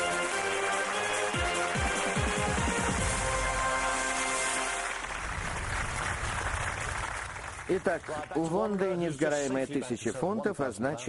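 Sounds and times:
audience applauding: 0.0 - 9.5.

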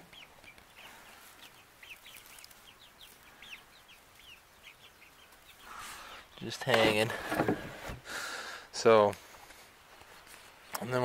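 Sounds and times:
young chickens peeping: 0.0 - 11.0.

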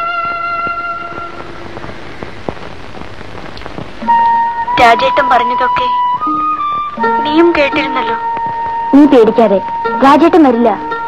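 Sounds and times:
background music: 0.0 - 11.0
film hiss with clicks: 0.0 - 11.0.

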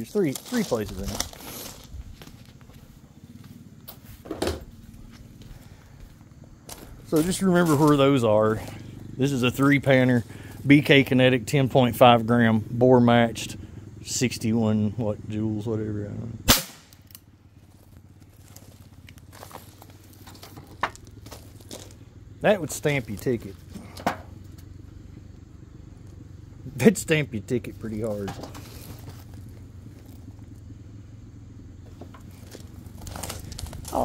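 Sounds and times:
faint footsteps: 0.0 - 8.0, 17.6 - 22.1
handling rustles: 0.0 - 8.0, 17.7 - 22.1, 27.8 - 30.4, 31.9 - 34.0
faint low hum: 0.0 - 34.0.

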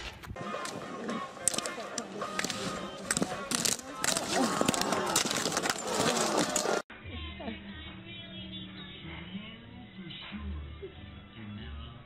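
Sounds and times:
background music: 0.4 - 12.0
voices: 0.4 - 12.0.

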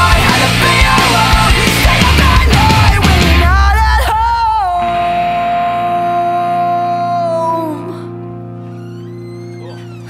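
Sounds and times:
pop-punk band playing: 0.0 - 8.6.

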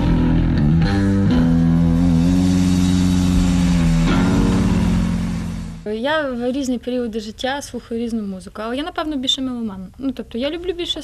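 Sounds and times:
electric bass guitar low notes: 0.0 - 5.9.

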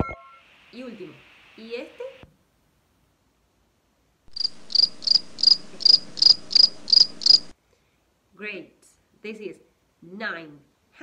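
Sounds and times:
cricket chirping: 4.3 - 7.5.

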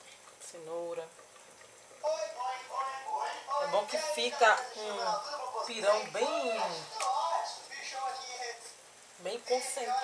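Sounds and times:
person speaking: 2.0 - 10.0.

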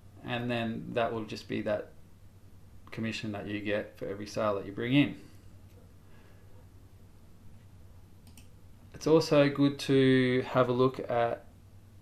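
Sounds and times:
faint low hum: 0.0 - 12.0
computer mouse click: 8.2 - 8.6.

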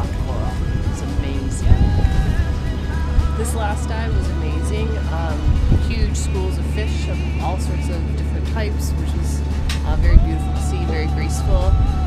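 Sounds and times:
woman talking: 0.0 - 2.5, 3.2 - 11.9
background music: 0.0 - 12.0
steady low rumble: 0.0 - 12.0.

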